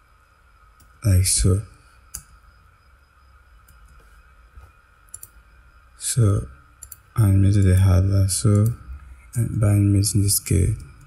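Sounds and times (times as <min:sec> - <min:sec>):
faint computer mouse clicks: 0:05.1 - 0:05.4, 0:06.8 - 0:07.0.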